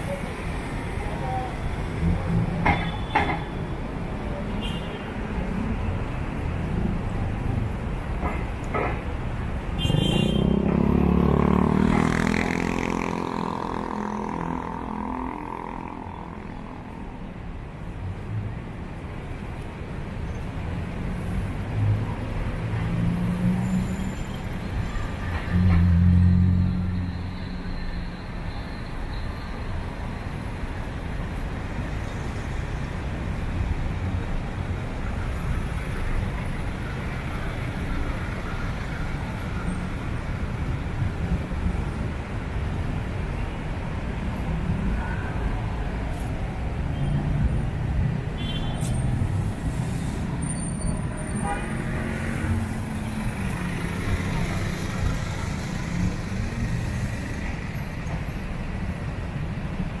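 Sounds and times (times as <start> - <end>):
traffic rumble: 0.0 - 60.0.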